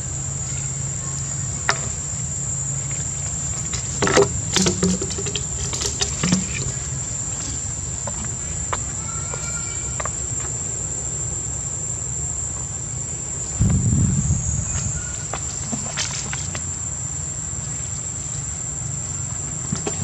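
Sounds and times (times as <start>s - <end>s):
insects droning: 0.0s - 20.0s
short low rumble: 13.6s - 16.4s.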